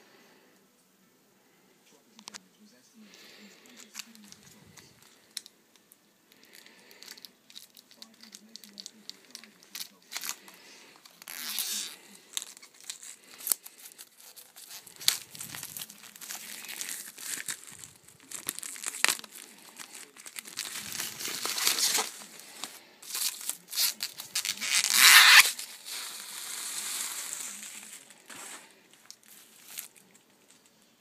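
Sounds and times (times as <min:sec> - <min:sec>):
plastic wrap crinkling: 0:03.7 - 0:31.0.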